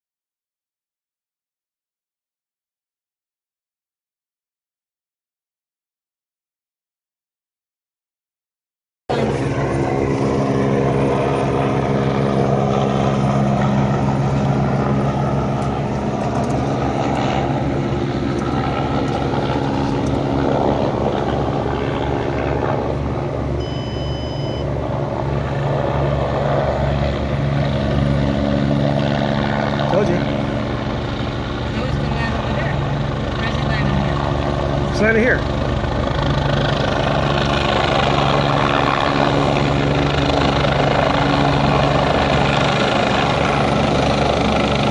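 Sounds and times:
helicopter engine and rotor: 9.1s - 44.9s.

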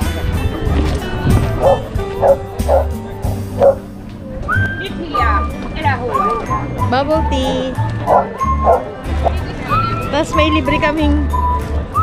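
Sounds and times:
background music: 0.0s - 12.0s
dog barking: 1.6s - 2.9s, 3.6s - 3.8s, 8.0s - 8.9s.

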